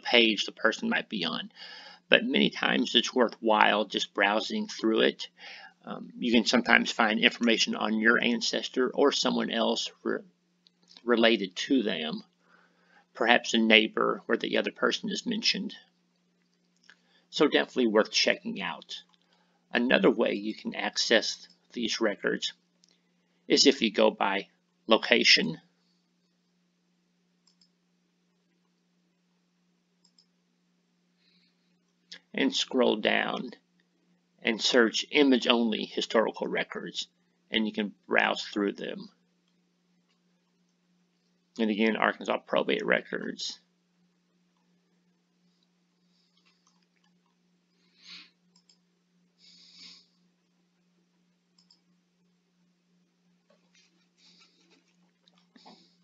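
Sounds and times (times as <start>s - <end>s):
faint steady hum: 0.0s - 56.0s
computer mouse clicks: 27.4s - 27.8s, 30.0s - 30.3s, 48.5s - 48.8s, 51.6s - 51.8s.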